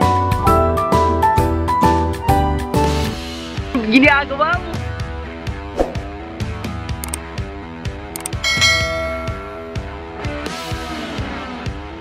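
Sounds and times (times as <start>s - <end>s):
bright bell-like ding: 8.4s - 9.9s.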